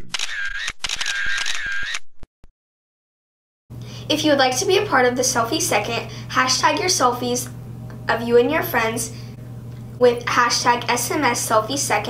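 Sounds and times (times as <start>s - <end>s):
camera shutter clicks: 0.0s - 2.1s.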